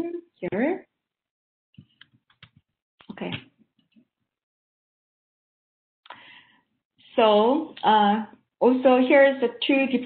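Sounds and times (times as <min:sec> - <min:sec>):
woman speaking: 0:00.0 - 0:00.9, 0:03.1 - 0:03.4, 0:07.2 - 0:10.0.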